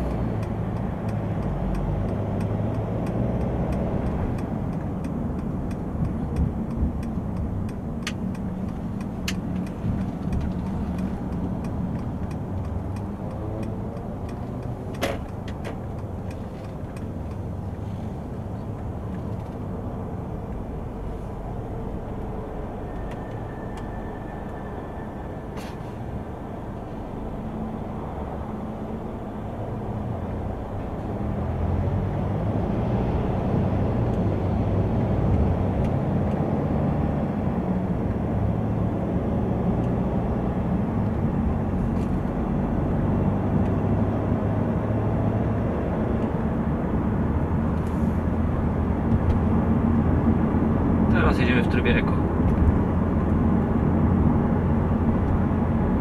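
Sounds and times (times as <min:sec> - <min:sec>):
diesel car engine: 0:00.0 - 0:56.0
road noise: 0:00.0 - 0:56.0.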